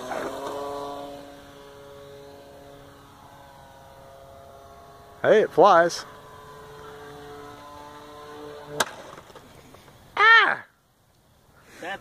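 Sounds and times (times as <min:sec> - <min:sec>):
model plane motor humming: 0:00.0 - 0:10.2.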